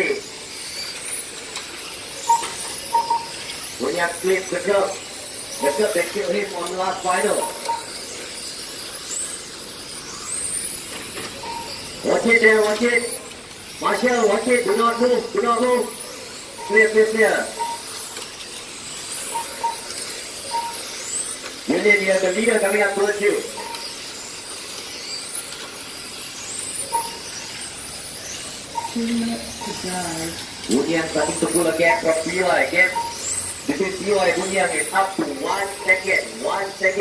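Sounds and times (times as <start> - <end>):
rc car motors whining: 0.0 - 37.0.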